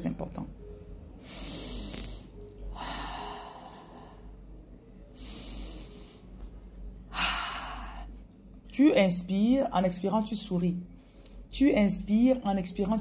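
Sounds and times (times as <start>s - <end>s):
woman breathing deeply: 1.2s - 4.4s, 5.2s - 6.4s, 7.1s - 8.2s.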